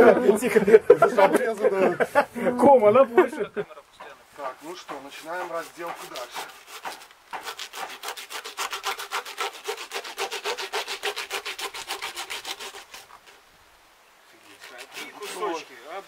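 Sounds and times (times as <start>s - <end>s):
hand saw cutting fish: 4.7s - 13.4s, 14.4s - 15.7s.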